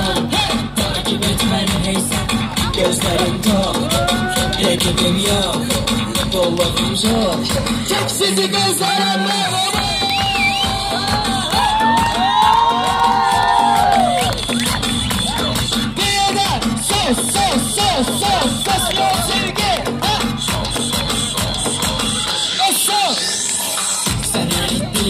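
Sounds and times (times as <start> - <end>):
loud live music with steady beat: 0.0 - 25.0
crowd cheering and shouting: 2.2 - 5.6, 7.1 - 25.0
high rising-and-falling shouts: 10.4 - 14.3.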